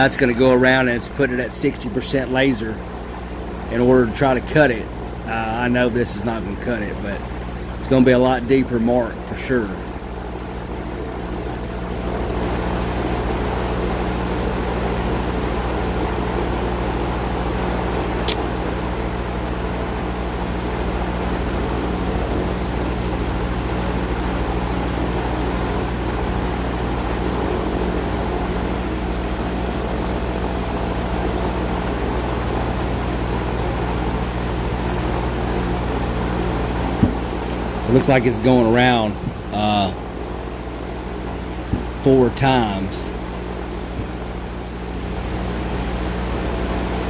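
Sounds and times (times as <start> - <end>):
laser cutter hum and whir: 0.0 - 47.0.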